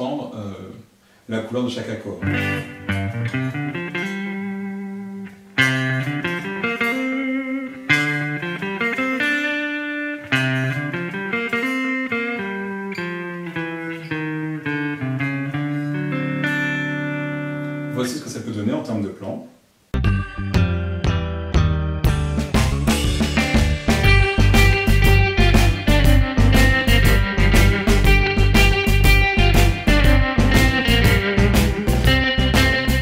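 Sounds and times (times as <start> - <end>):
electric guitar blues phrases: 1.4 - 18.6, 22.0 - 33.0.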